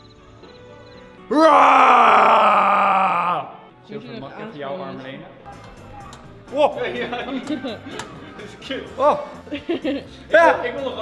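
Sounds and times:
faint background music: 0.0s - 11.0s
groan-like voice: 1.3s - 3.5s.

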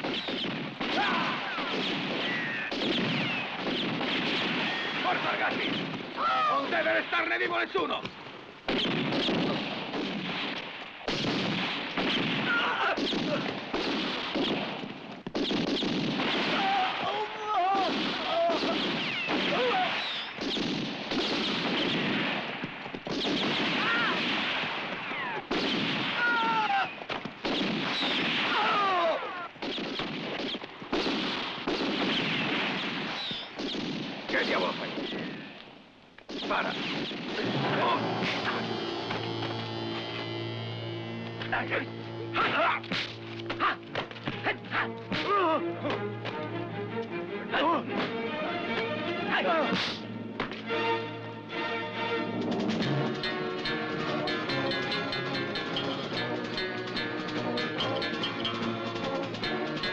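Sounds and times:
rifle and revolver gunfire: 0.0s - 6.1s, 8.7s - 17.1s, 17.7s - 26.4s, 27.2s - 29.0s, 29.6s - 35.5s, 36.3s - 39.5s
men crying out and screaming: 26.2s - 27.0s.

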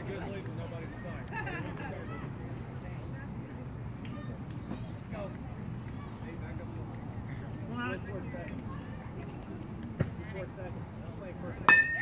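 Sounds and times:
metal bat hitting ball: 11.7s - 12.0s.

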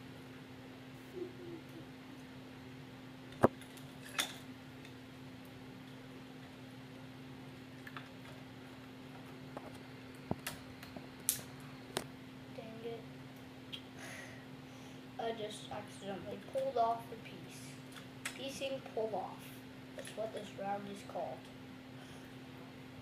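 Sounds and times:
low hum: 1.0s - 3.4s.

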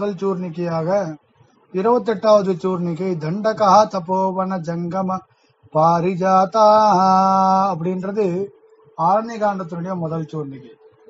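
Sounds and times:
man chanting devotional verse: 0.0s - 10.9s.

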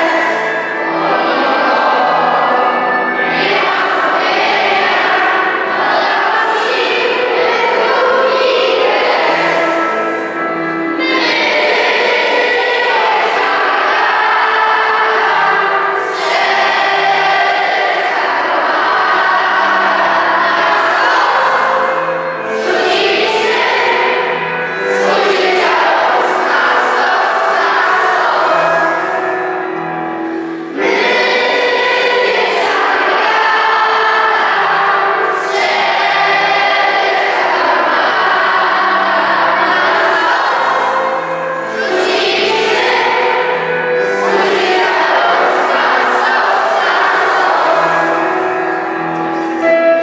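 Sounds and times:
children singing together: 0.0s - 50.0s
low accompanying notes: 0.0s - 50.0s.

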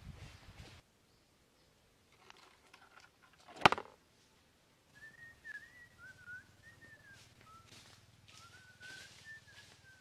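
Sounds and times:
faint thin whistle: 5.0s - 10.0s.

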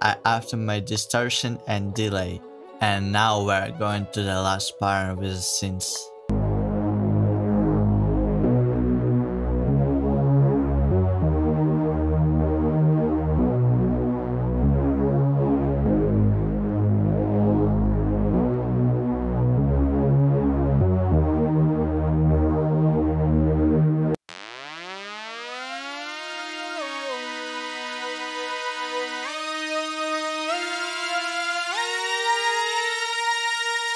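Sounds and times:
sustained synth chords: 6.0s - 24.2s, 24.9s - 33.9s
deep synth bass: 6.3s - 24.2s.

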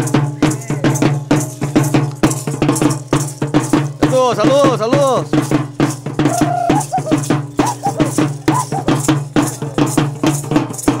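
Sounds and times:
hand rattles shaken rhythmically: 0.0s - 11.0s.

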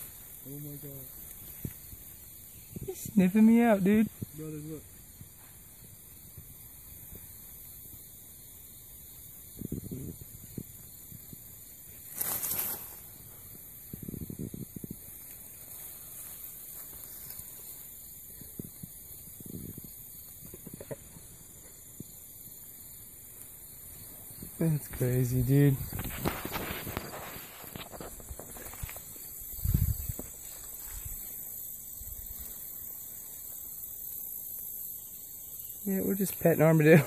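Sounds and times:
steady hiss: 0.0s - 37.0s
animal rustling in grass: 12.0s - 13.4s, 15.0s - 18.0s, 25.6s - 33.8s.

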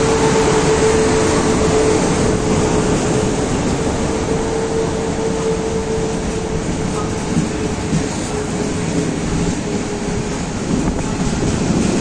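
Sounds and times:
train coaches rumbling past: 0.0s - 12.0s.

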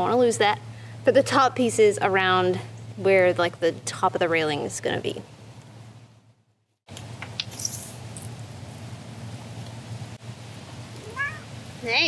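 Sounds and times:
outdoor background noise: 0.0s - 12.0s
cat meowing: 11.0s - 11.5s.

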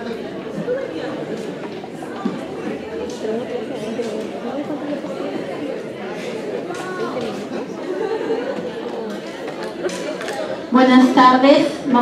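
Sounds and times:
many voices chatting: 0.0s - 12.0s.

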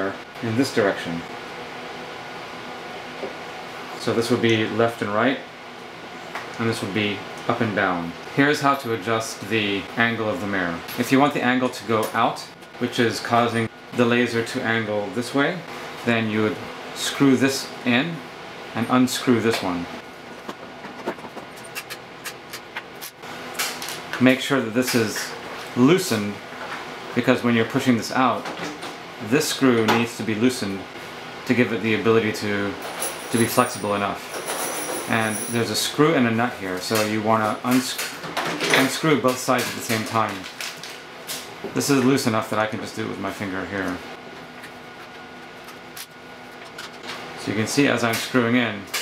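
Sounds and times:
room hum: 0.0s - 49.0s.

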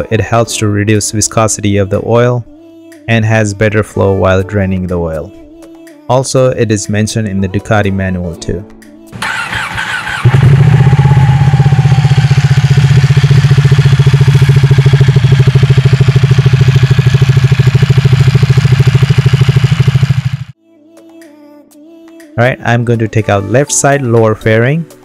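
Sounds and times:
engine cranking: 9.2s - 20.5s
motorcycle engine idling: 9.2s - 20.6s.

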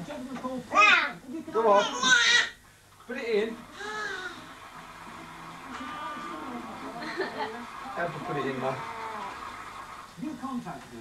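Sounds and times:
television playing: 0.0s - 11.0s
quiet indistinct talk: 5.6s - 11.0s
person chuckling: 7.0s - 7.6s.

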